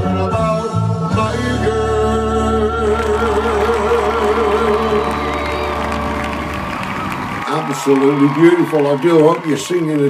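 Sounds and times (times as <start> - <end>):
man singing with vibrato: 0.0 - 6.0
backing track music: 0.0 - 7.5.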